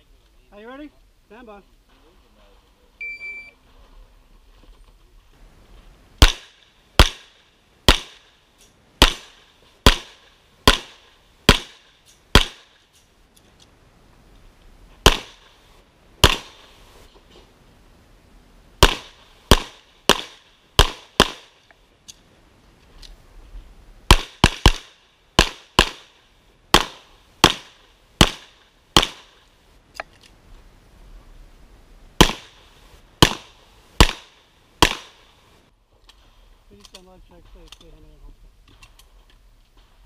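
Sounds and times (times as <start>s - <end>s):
pistol shots: 6.2s - 8.3s, 9.0s - 12.8s, 15.0s - 15.4s, 16.2s - 16.6s, 18.8s - 21.6s, 24.1s - 26.1s, 26.7s - 29.3s, 32.2s - 32.6s, 33.2s - 35.2s.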